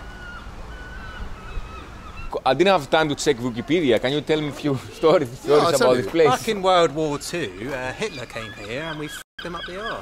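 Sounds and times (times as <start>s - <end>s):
faint bird calls: 0.0s - 2.5s, 7.0s - 10.0s
outdoor background noise: 0.0s - 10.0s.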